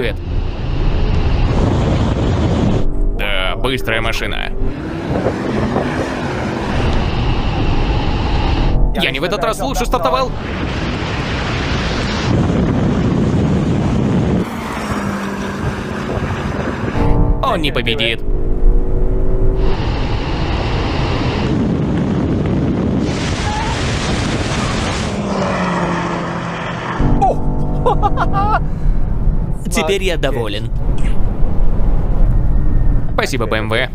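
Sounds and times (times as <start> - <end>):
wind buffeting microphone: 0.0 - 25.4, 28.1 - 33.9
engine and road noise with hum: 0.0 - 33.9
car accelerating on wet road: 4.7 - 8.2, 10.9 - 17.0, 24.2 - 27.0.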